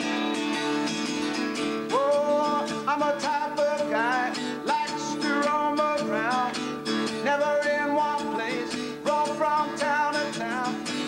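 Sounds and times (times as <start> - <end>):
acoustic guitar strumming: 0.0 - 11.0
man singing: 1.6 - 11.0.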